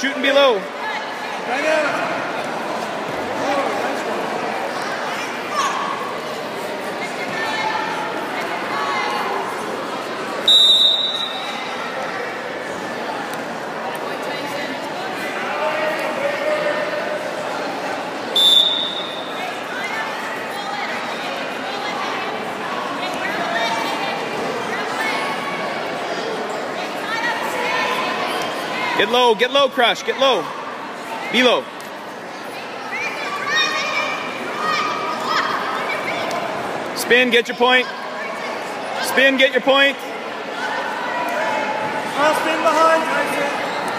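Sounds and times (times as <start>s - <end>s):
voices and shouting in gym hall: 0.0s - 43.9s
referee's whistle blasts: 10.4s - 11.5s, 18.4s - 19.3s.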